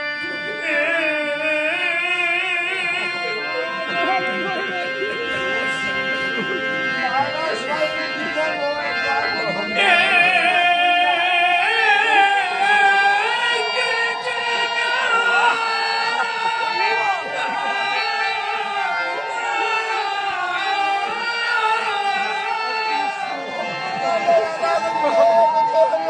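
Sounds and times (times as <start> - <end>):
man singing devotional song: 0.0 - 6.1, 6.8 - 24.9
harmonium: 0.0 - 26.0.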